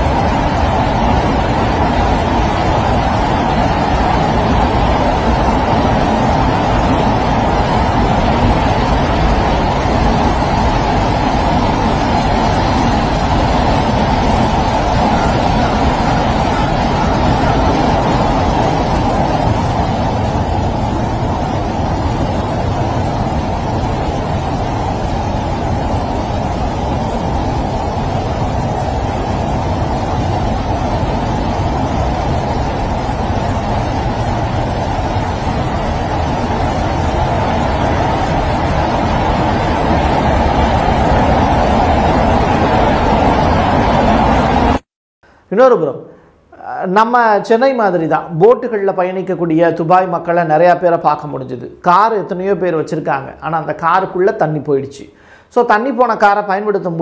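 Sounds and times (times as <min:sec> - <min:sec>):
flash flood water roaring: 0:00.0 - 0:46.2.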